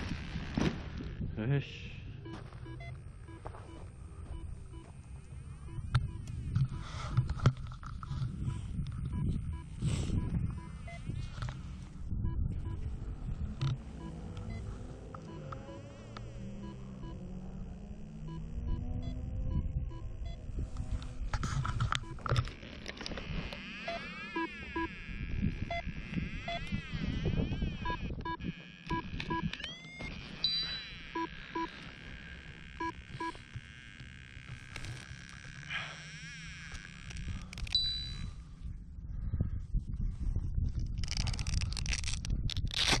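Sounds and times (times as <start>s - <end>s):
short electronic beeps: 2.2s - 4.9s, 8.4s - 11.2s, 14.0s - 15.9s, 23.9s - 25.0s, 27.8s - 29.8s, 30.4s - 31.7s, 32.8s - 33.4s, 37.7s - 38.4s
wind buffeting microphone: 5.4s - 13.9s, 25.0s - 29.5s, 38.2s - 43.0s.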